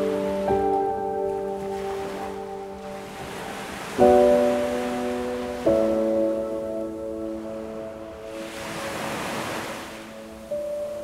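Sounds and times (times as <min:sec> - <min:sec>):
held piano notes: 0:00.0 - 0:11.0
wave surging: 0:00.0 - 0:11.0.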